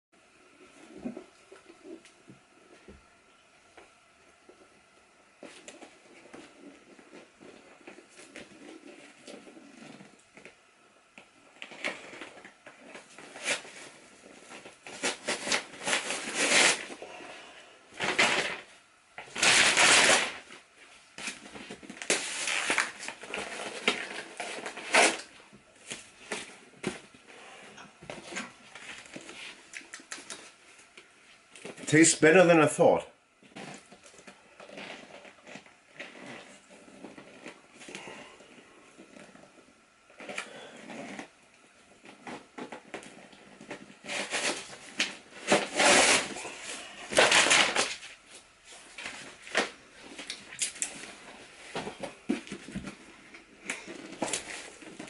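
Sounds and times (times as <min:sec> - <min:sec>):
paper ripping: 0:14.5 - 0:17.0, 0:19.3 - 0:20.5, 0:21.2 - 0:26.6, 0:42.2 - 0:48.1
paper crumpling: 0:21.2 - 0:26.6.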